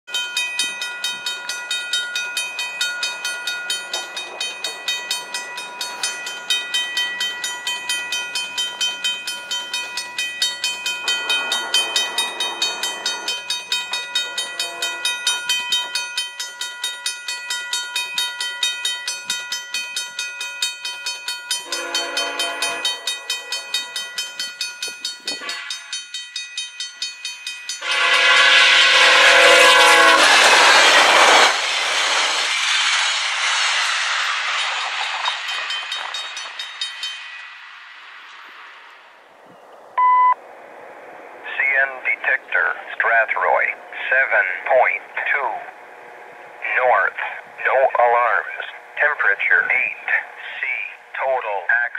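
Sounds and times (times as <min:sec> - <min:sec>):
level-crossing warning bell ringing: 0:00.1 - 0:30.8, 0:40.0 - 0:51.9
train passing: 0:00.1 - 0:51.9
locomotive horn blasts: 0:14.4 - 0:15.2, 0:21.6 - 0:23.7, 0:25.3 - 0:25.8, 0:27.8 - 0:31.0.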